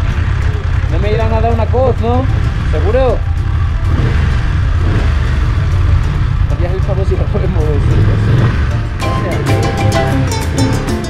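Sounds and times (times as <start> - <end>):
motorcycle engine low rumble: 0.0 - 10.4.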